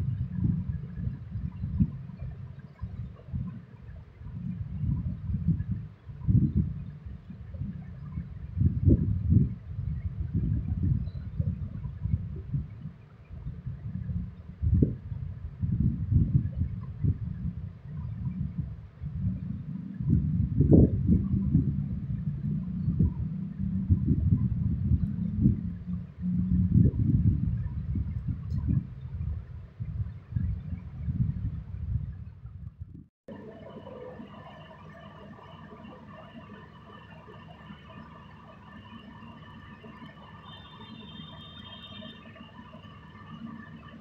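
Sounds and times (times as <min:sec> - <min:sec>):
low rumbling microphone noise: 0:00.0 - 0:44.0.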